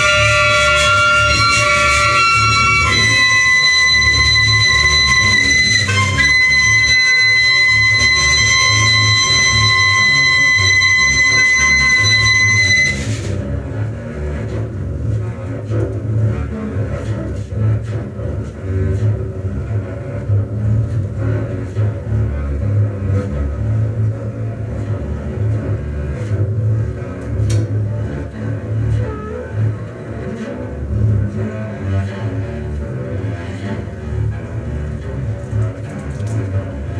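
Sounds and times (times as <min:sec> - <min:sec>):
clarinet and saxophone high note: 0:00.0 - 0:13.1
double bass playing: 0:00.0 - 0:36.9.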